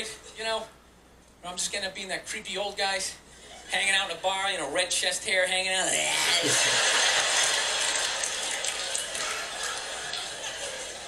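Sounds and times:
audience laughing: 6.2s - 11.0s
audience applauding: 6.4s - 11.0s.

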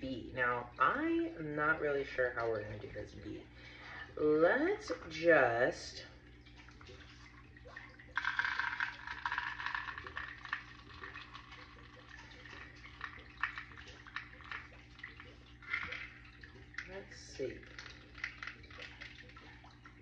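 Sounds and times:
beads rattling into a cup: 8.2s - 11.4s.

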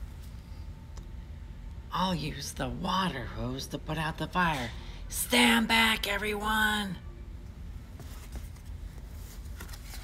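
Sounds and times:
low room rumble: 0.0s - 10.0s
soft rustling of book handling: 7.8s - 10.0s.

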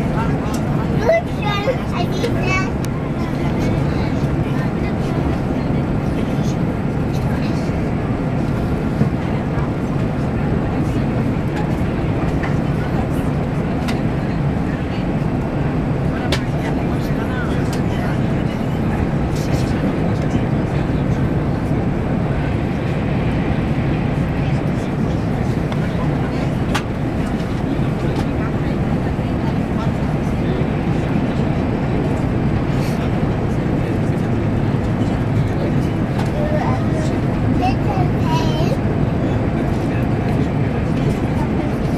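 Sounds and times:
train carriage running noise: 0.0s - 41.9s.

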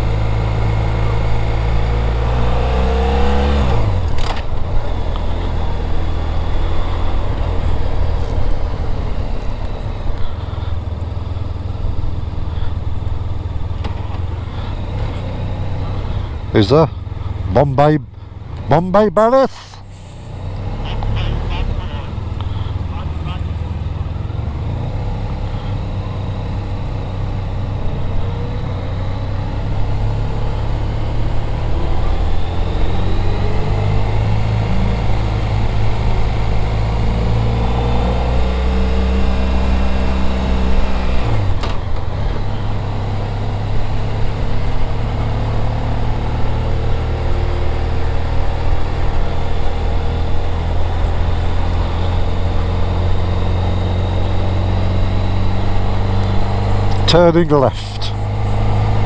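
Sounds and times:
motorcycle engine running: 0.0s - 17.5s, 20.2s - 59.0s.

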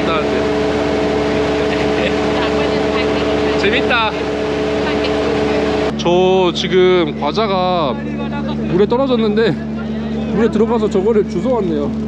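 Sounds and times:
ferry engine droning: 0.0s - 12.0s.

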